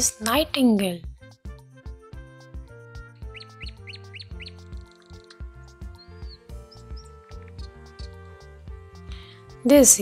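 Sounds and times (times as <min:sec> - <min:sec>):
background music with steady beat: 0:00.0 - 0:10.0
nightingale song: 0:02.9 - 0:10.0.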